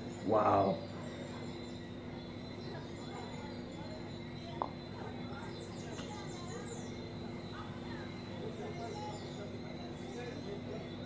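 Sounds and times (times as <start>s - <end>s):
steady hum and hiss: 0.0s - 11.0s.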